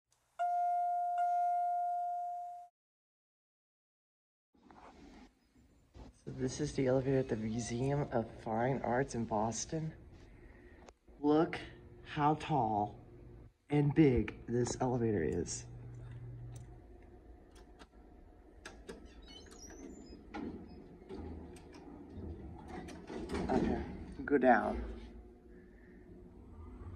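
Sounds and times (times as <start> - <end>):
elevator chime: 0.4 - 2.7
faint elevator hum: 5.1 - 26.9.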